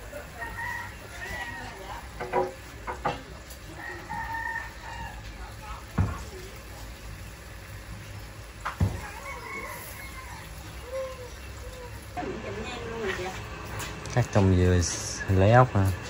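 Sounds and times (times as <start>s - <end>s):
rooster crowing: 0.2s - 2.0s, 3.7s - 5.3s, 8.8s - 11.4s.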